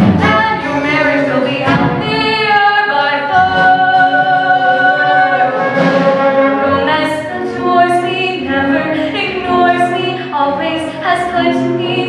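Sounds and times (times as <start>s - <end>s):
woman singing show tune: 6.6s - 12.0s.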